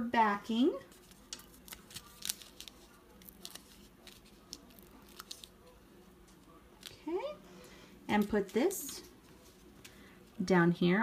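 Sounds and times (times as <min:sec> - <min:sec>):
paper backing peeling off: 0:00.9 - 0:07.1
cellophane crinkling: 0:00.9 - 0:07.3.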